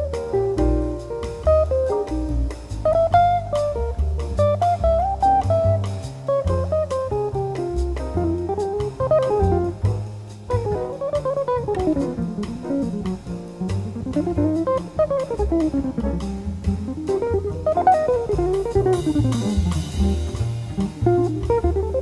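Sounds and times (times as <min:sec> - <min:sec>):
bass line: 0:00.0 - 0:22.0
drums: 0:00.0 - 0:22.0
jazz guitar soloing: 0:00.0 - 0:22.0.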